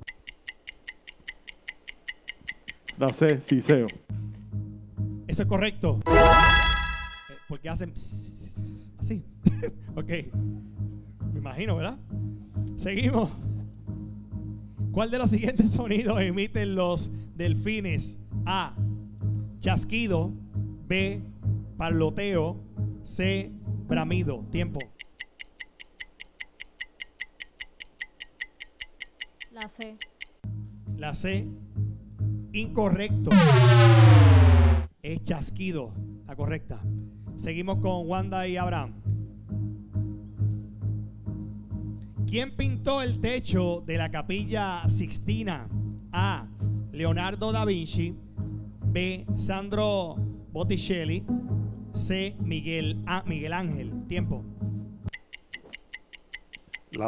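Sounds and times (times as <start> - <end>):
countdown timer ticking: 0.0 - 4.1, 6.1 - 7.6, 33.3 - 34.9, 55.1 - 57.0
rapid countdown timer ticking: 0.0 - 4.1, 22.6 - 30.4, 52.9 - 57.0.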